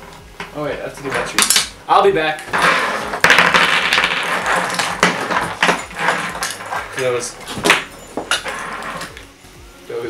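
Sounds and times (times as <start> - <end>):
wire lights clinking and rattling: 0.1 - 9.3.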